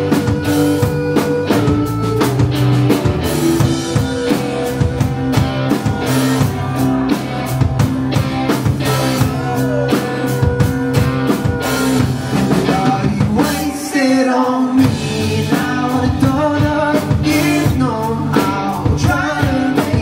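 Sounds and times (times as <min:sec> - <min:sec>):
drum kit beating: 0:00.0 - 0:20.0
guitar chords: 0:00.0 - 0:20.0.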